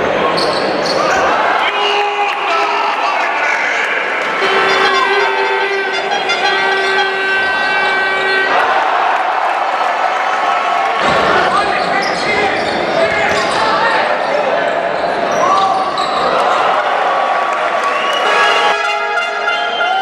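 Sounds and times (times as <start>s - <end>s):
players and spectators voices: 0.0s - 20.0s.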